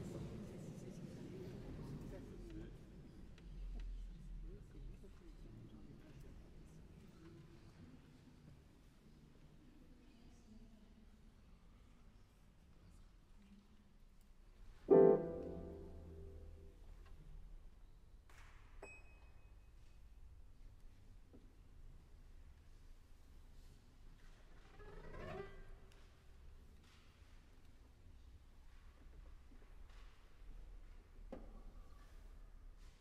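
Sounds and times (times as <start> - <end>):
loud piano chord ringing: 14.9 - 16.6.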